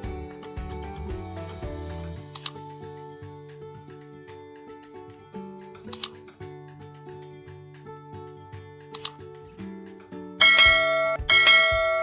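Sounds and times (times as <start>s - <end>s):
background music: 0.0s - 12.0s
notification bell ringing: 10.4s - 12.0s.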